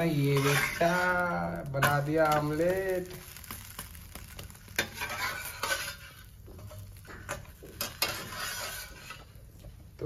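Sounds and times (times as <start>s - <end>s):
utensil scraping a pan: 0.0s - 9.6s
food sizzling in a pan: 0.0s - 9.8s.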